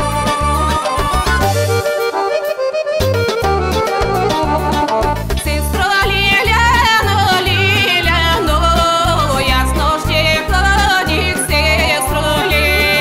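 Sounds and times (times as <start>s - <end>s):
backing band with bass beat: 0.0s - 13.0s
woman singing folk song: 5.4s - 13.0s.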